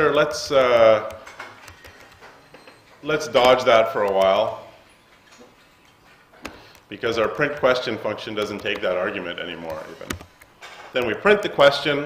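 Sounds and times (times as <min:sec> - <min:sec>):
keyboard keystroke clicks: 0:01.0 - 0:02.2, 0:08.4 - 0:08.9.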